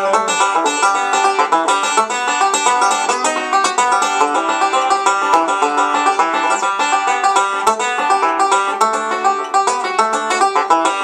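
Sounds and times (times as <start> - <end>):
banjo fingerpicked fast: 0.0 - 11.0.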